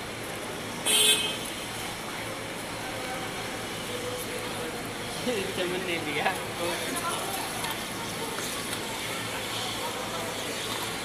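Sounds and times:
steady outdoor hum: 0:00.0 - 0:11.0
vehicle horn toot: 0:00.8 - 0:01.4.

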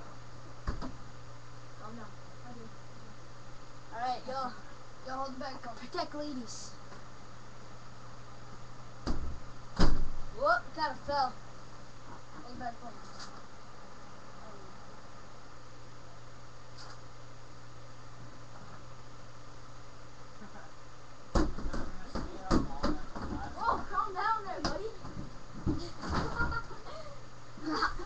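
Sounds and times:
punches thudding on punching bag: 0:09.0 - 0:10.3, 0:21.3 - 0:23.4.

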